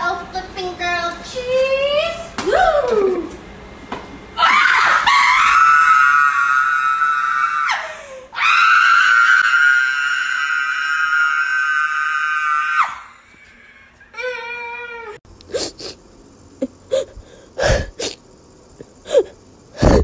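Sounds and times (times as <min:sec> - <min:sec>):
woman screaming: 0:04.4 - 0:13.2
breath: 0:17.1 - 0:18.0.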